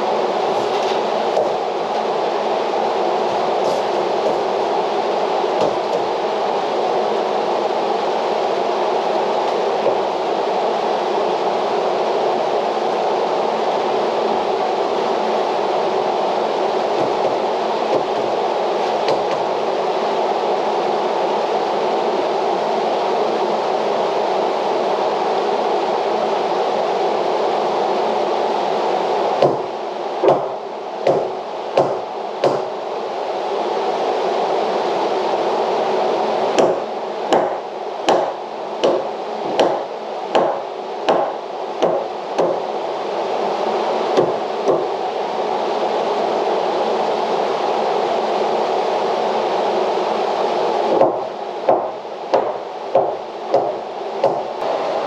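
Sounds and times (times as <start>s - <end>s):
drum fan rushing: 0.0s - 20.7s
hammer striking wooden stud: 5.6s - 6.0s, 17.0s - 18.3s, 19.0s - 19.5s, 29.4s - 32.7s, 36.6s - 42.6s, 44.2s - 44.9s, 51.0s - 54.5s.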